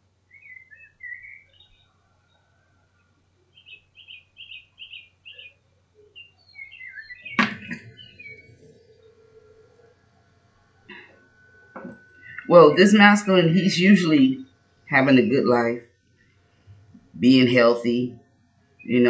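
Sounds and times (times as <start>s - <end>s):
small bird chirping: 0.3s - 2.5s, 3.5s - 9.9s, 10.9s - 14.7s
sharp knock: 7.3s - 7.9s.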